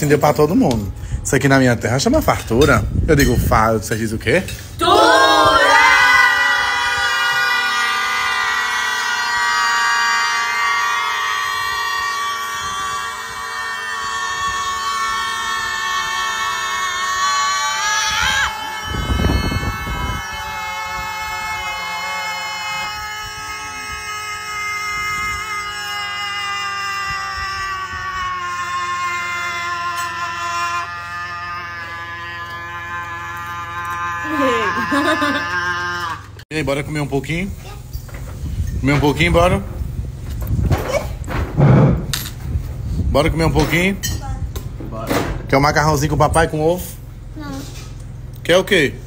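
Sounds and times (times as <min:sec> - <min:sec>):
voices shouting long note: 0:04.8 - 0:36.4
short low thump: 0:40.6 - 0:42.6.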